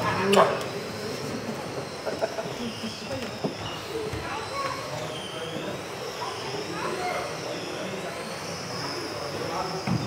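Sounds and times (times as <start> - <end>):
faint hall chatter: 0.0 - 10.0
model car motors whining: 0.0 - 10.0.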